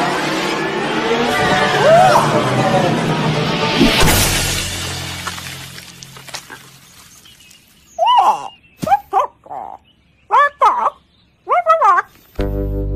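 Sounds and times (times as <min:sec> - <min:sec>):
loud crash: 0:01.0 - 0:06.5
cartoon animal character calls: 0:08.0 - 0:12.1.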